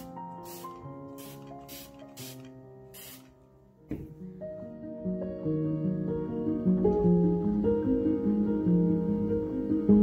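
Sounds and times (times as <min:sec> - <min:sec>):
spray bottle hissing: 0:00.0 - 0:03.4
soft background music: 0:00.0 - 0:10.0.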